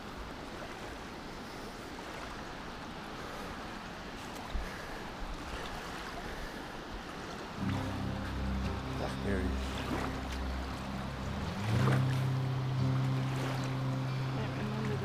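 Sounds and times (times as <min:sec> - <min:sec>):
river rushing: 0:00.0 - 0:15.0
low hum shifting pitch: 0:07.6 - 0:15.0.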